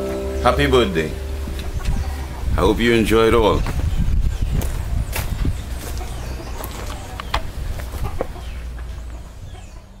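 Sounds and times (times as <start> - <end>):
steady low rumble: 0.0 - 9.7
chicken clucking: 0.0 - 10.0.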